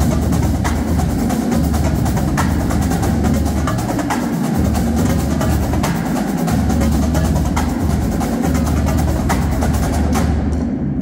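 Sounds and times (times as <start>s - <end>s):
bass drums: 0.0s - 11.0s
snare and tenor drums: 0.0s - 11.0s.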